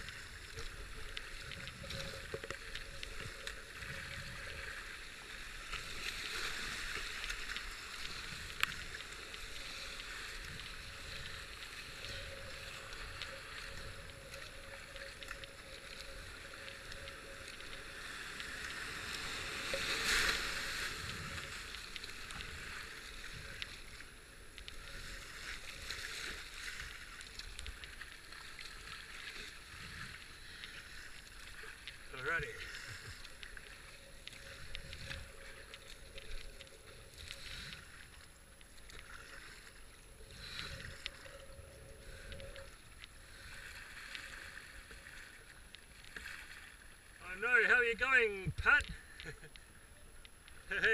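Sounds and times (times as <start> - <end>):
paddle splashes: 4.6 - 24.1, 43.2 - 47.9.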